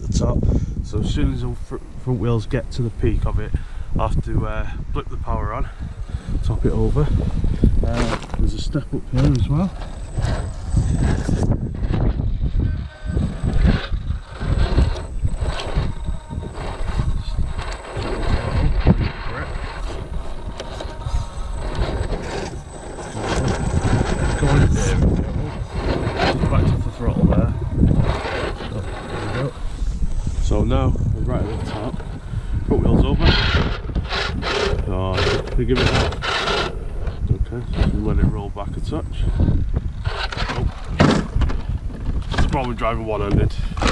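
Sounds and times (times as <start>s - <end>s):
wind rumbling on microphone: 0.0s - 43.9s
electric motor whirring: 7.1s - 42.4s
tyres scrabbling on stone: 7.5s - 30.1s, 33.1s - 38.1s.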